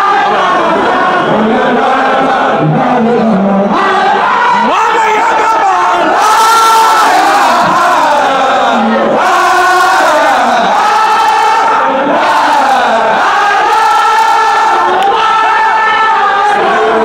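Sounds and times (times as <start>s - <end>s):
crowd of men chanting: 0.0s - 17.0s.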